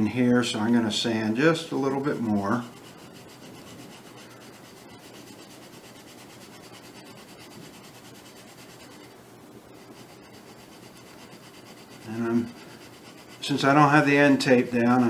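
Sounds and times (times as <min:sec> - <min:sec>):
sandpaper scratching on wood: 0:01.7 - 0:09.2, 0:09.8 - 0:15.0.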